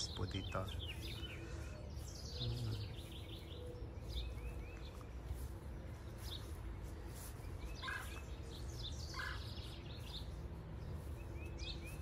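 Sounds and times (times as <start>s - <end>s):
low outdoor rumble: 0.0s - 12.0s
songbirds chirping: 0.0s - 12.0s.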